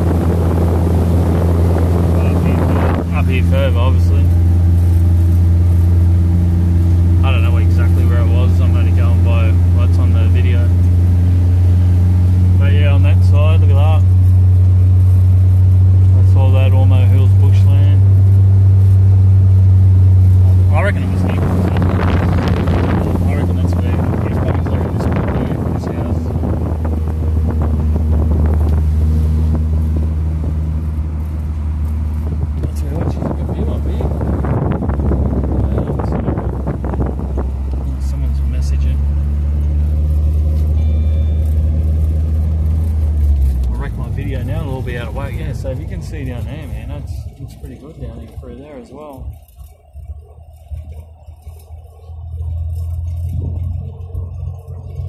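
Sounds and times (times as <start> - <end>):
car engine drone: 0.0 - 55.0
rushing road noise: 0.0 - 55.0.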